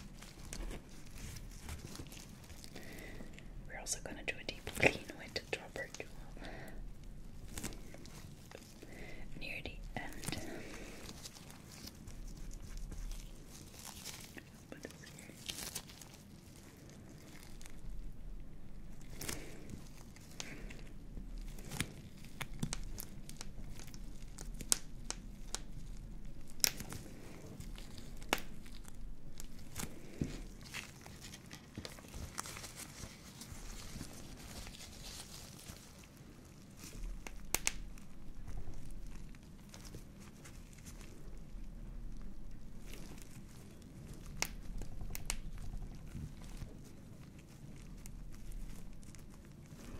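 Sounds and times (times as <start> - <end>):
paper tissue crinkling: 0.0 - 49.9.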